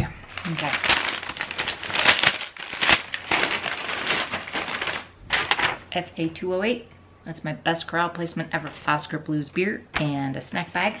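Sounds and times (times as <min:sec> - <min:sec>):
paper bag crinkling and rustling: 0:00.3 - 0:06.0.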